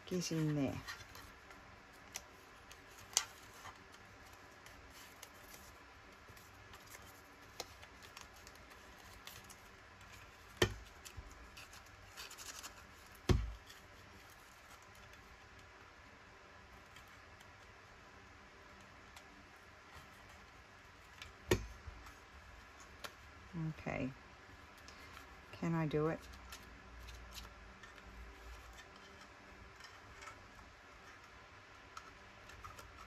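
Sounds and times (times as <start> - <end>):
paper rustling: 0.1 - 15.4.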